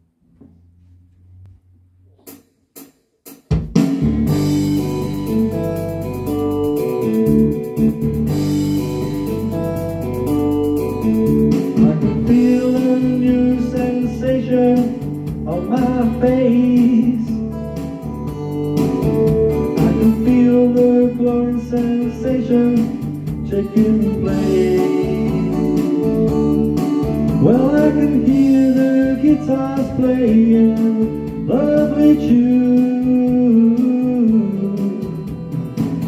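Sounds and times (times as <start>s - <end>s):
band accompaniment: 3.5s - 36.0s
electronic keyboard melody: 4.3s - 36.0s.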